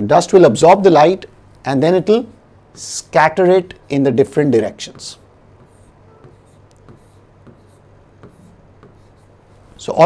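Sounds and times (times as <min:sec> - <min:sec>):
pen ticking and scraping on board: 0:04.9 - 0:09.4.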